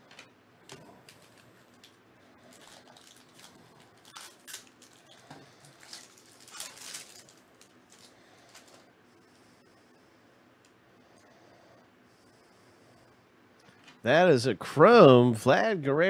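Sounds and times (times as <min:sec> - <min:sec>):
foil wrapper tearing and crinkling: 0:01.1 - 0:08.8.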